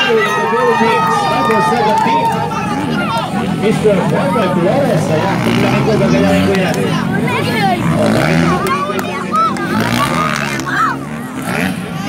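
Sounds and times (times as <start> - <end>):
dirt bike engines revving: 0.0 - 12.0
people's voices: 0.0 - 12.0.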